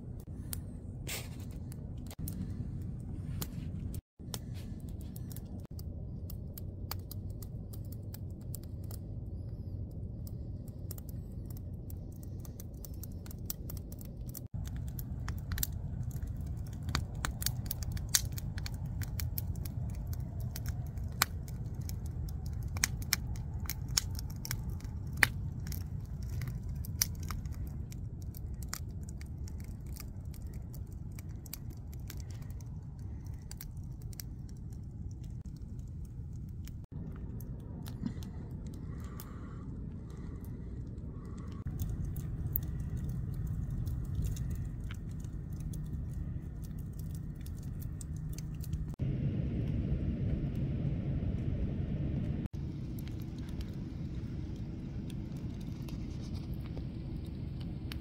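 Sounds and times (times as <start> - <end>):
low rumble: 0.0 - 58.0
campfire crackling and popping: 0.2 - 49.0, 52.4 - 58.0.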